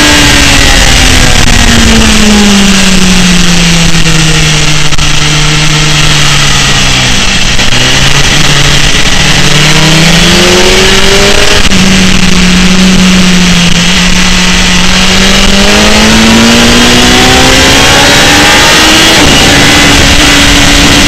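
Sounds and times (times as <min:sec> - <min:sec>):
motorcycle engine revving: 0:00.0 - 0:21.0
wind roar: 0:00.0 - 0:21.0.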